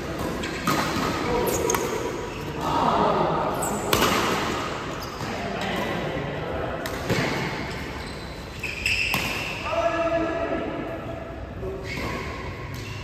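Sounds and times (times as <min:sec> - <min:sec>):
shoe squeaks on court floor: 0:01.2 - 0:02.5, 0:07.6 - 0:09.6.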